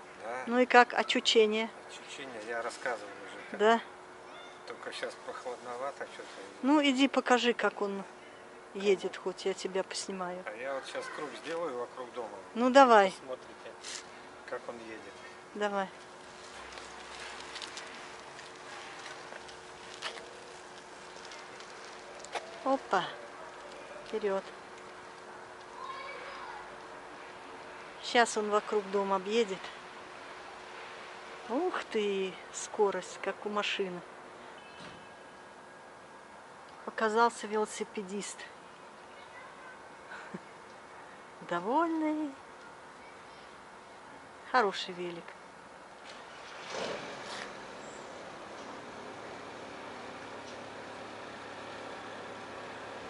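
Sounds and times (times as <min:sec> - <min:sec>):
distant city traffic: 0:00.0 - 0:53.0.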